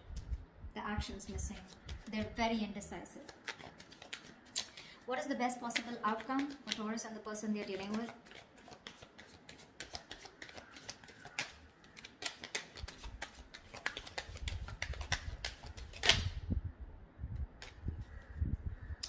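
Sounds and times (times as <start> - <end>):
cards being shuffled: 1.2 - 16.3
sharp card snap: 12.2 - 16.3.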